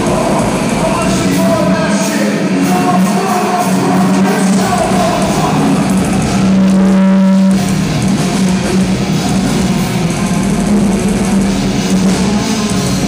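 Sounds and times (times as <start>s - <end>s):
heavy metal band playing live: 0.0s - 13.0s
held electric guitar note: 4.9s - 7.9s.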